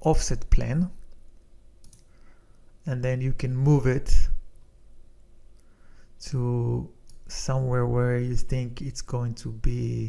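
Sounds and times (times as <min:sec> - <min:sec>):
computer mouse clicking: 0:01.8 - 0:02.1.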